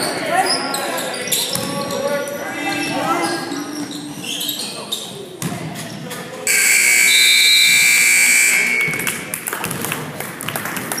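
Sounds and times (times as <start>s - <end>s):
scoreboard buzzer: 6.5s - 9.0s.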